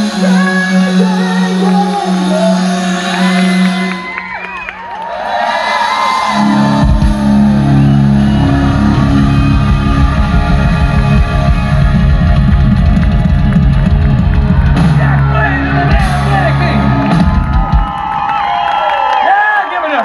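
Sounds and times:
live rock band playing: 0:00.0 - 0:04.6, 0:06.1 - 0:18.3
heavy rapid drumming: 0:06.5 - 0:18.4.

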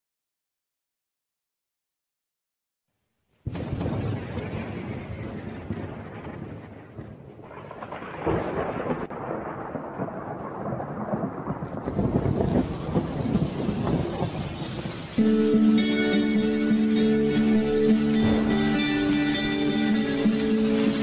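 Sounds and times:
rain: 0:03.3 - 0:21.0
rolling thunder: 0:03.4 - 0:21.0.

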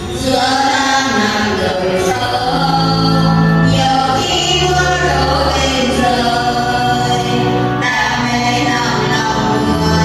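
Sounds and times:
choir singing a hymn: 0:00.0 - 0:10.0.

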